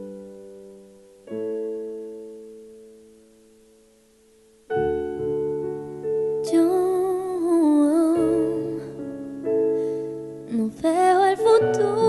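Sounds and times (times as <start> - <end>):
piano chords: 0.0 - 12.0
woman singing with vibrato: 6.4 - 9.1, 10.5 - 12.0.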